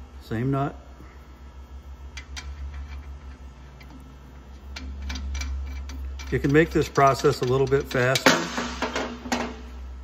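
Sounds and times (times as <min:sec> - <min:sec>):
low steady hum: 0:00.0 - 0:10.0
metallic clicks of nut threading: 0:02.1 - 0:09.6.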